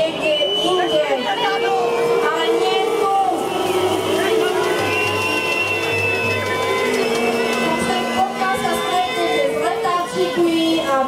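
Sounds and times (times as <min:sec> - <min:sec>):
singing over public-address system: 0:00.0 - 0:05.0, 0:06.5 - 0:11.0.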